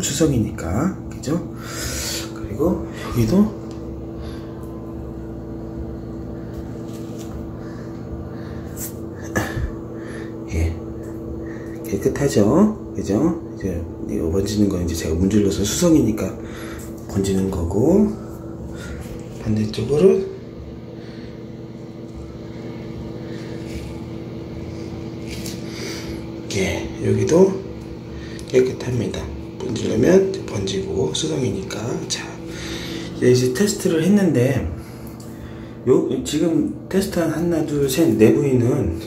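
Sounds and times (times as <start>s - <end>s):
steady mechanical hum: 0.0s - 39.0s.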